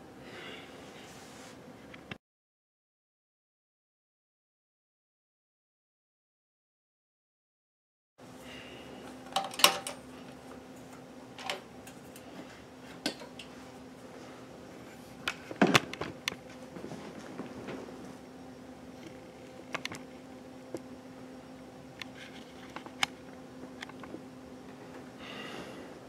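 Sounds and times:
steady low hum: 0.0s - 2.1s, 8.2s - 26.0s.

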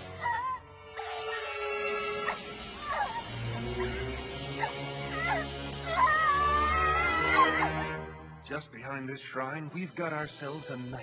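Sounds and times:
girl whimpering and crying in pain: 0.0s - 8.0s
dramatic background music: 0.0s - 11.0s.

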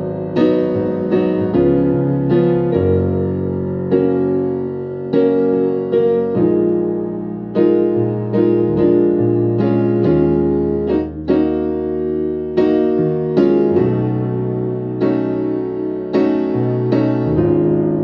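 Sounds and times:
keyboard playing gospel chords: 0.0s - 18.0s.

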